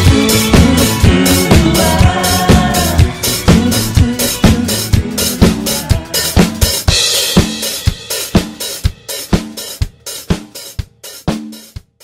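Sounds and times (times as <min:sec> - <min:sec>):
drum kit playing steady beat: 0:00.0 - 0:12.0.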